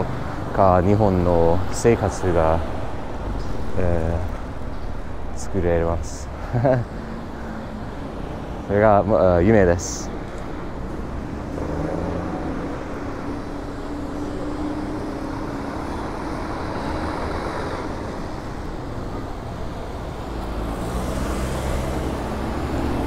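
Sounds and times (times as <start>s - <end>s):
vehicles passing: 0.0s - 23.0s.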